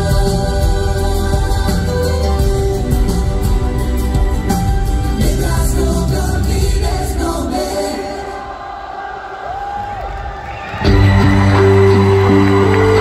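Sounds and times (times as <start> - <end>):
live pop band: 0.0 - 8.6, 10.2 - 13.0
crowd noise: 0.0 - 13.0.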